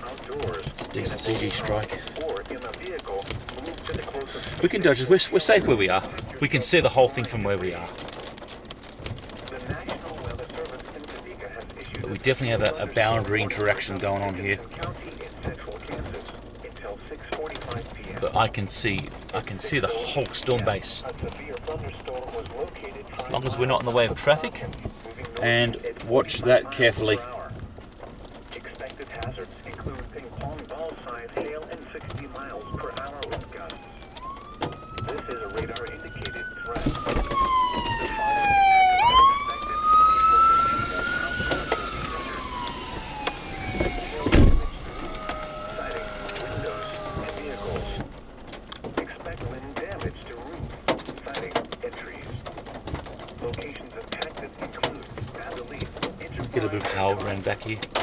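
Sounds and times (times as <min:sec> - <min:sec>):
siren wailing: 0:32.0 - 0:48.2
loud low thump: 0:43.8 - 0:45.0.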